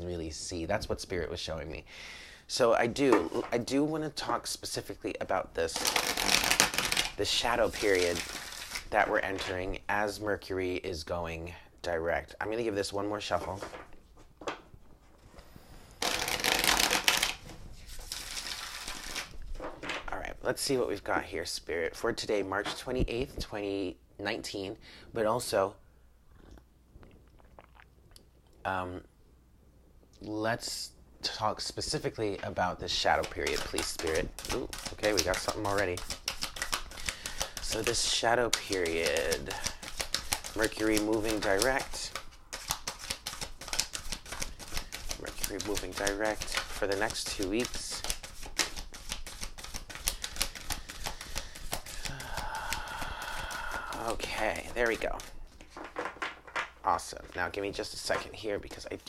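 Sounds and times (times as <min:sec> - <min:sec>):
cards being shuffled: 0:05.6 - 0:09.7, 0:15.3 - 0:20.0, 0:32.2 - 0:59.0.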